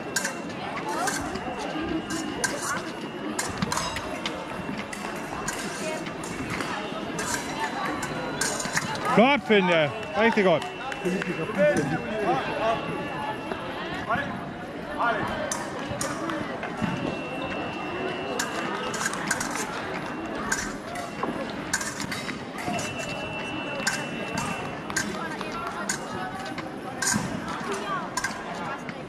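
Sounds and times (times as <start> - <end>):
chatter of many voices: 0.0 - 29.0
high electronic beep: 22.6 - 24.7.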